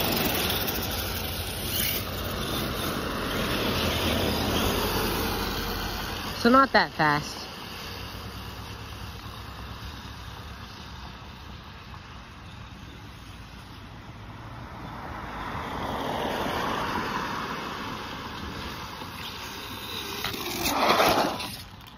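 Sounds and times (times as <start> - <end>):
tyres hissing on wet road: 0.0 - 21.7.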